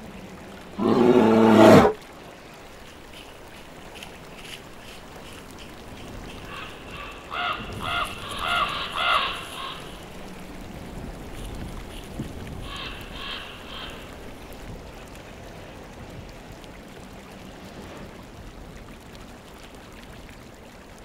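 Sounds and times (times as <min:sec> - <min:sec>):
crow cawing: 0:06.4 - 0:10.0, 0:12.6 - 0:14.1.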